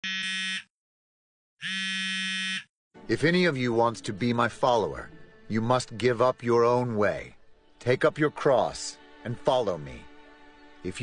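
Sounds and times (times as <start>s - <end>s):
buzzy phone ringtone: 0.0s - 0.7s, 1.6s - 2.7s.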